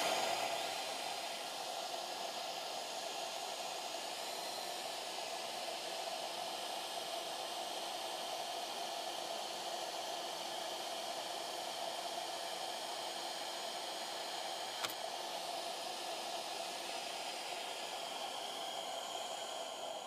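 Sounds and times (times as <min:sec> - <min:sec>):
router spindle whirring: 0:00.0 - 0:20.0.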